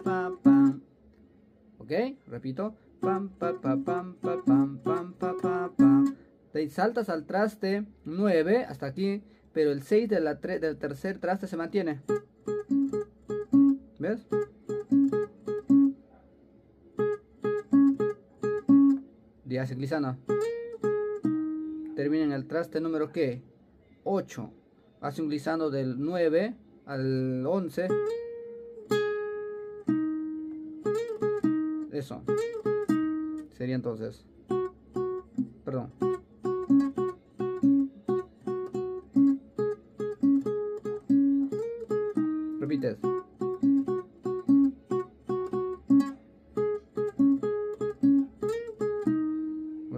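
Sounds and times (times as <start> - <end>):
fingerstyle acoustic guitar: 0.0 - 0.9, 2.4 - 8.9, 10.5 - 16.2, 17.0 - 19.1, 19.7 - 23.4, 27.5 - 33.6, 34.3 - 49.9.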